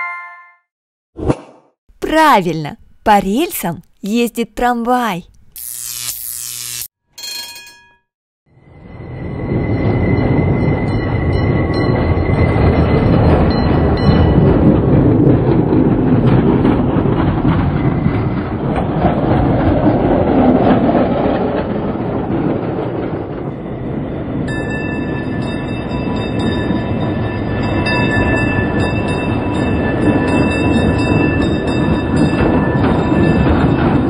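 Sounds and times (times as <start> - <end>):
tram wheels rumbling on rails: 8.6 - 34.0.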